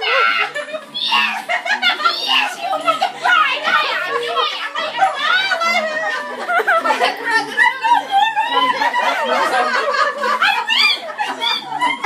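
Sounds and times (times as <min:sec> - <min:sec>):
women shrieking and shouting: 0:00.0 - 0:06.4.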